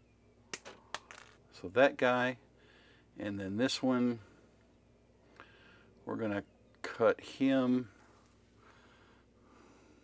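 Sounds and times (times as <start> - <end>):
faint soft breaths: 2.5 - 3.2, 4.1 - 6.0, 7.8 - 10.0.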